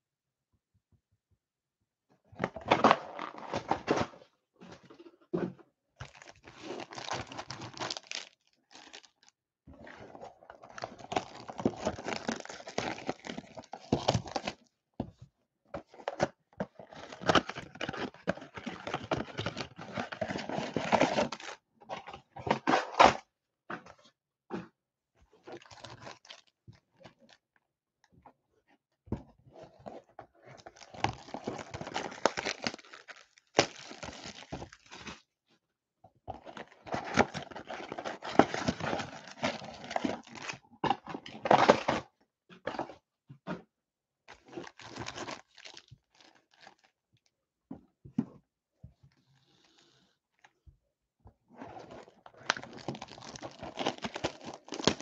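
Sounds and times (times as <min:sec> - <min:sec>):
cardboard boxes tearing: 0:52.5 - 0:55.0.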